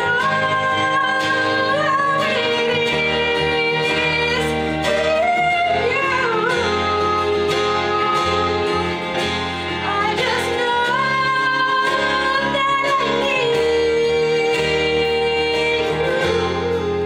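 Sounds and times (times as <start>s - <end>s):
instrumental accompaniment: 0.0s - 17.0s
woman singing: 0.0s - 17.0s.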